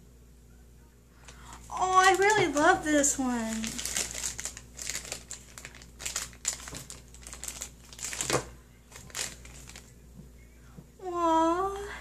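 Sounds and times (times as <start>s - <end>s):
plastic packaging crinkling: 1.2s - 10.0s.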